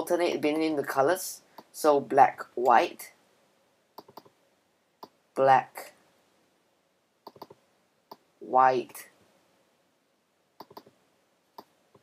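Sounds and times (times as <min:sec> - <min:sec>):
computer mouse clicks: 0:04.0 - 0:04.3, 0:07.2 - 0:08.2, 0:10.6 - 0:11.0.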